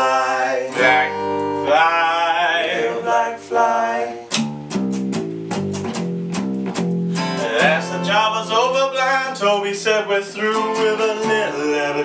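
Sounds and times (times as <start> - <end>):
acoustic guitars strumming chords: 0.0 - 12.0.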